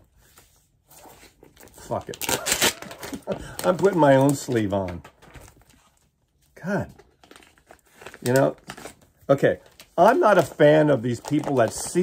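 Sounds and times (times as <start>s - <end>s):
plastic wrapping crinkling: 1.2s - 12.0s.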